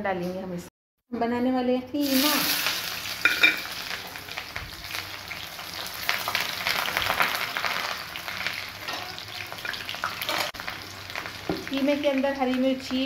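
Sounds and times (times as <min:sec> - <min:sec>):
onions sizzling in oil: 0:02.0 - 0:13.0.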